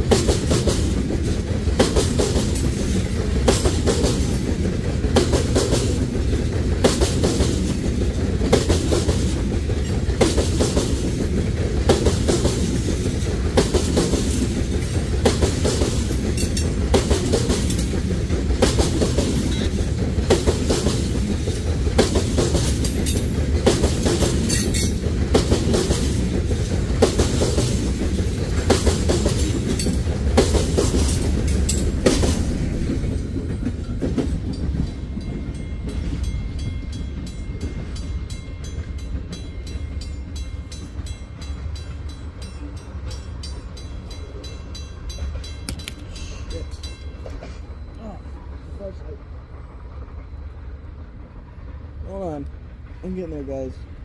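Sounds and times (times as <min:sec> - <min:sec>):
train wheels clicking over rail joints: 0:00.0 - 0:53.1
heavy train rumble: 0:00.0 - 0:54.0.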